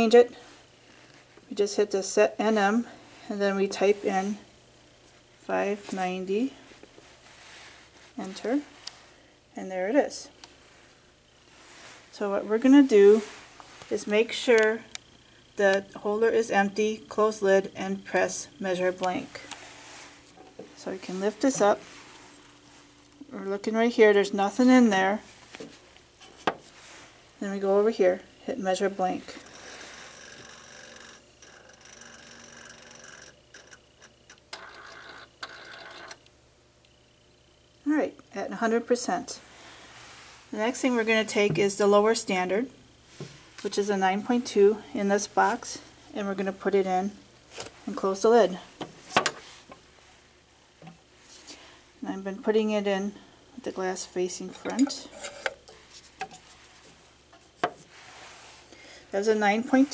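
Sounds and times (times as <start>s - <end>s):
lab instrument whirring: 12.1s - 26.6s, 27.3s - 37.0s.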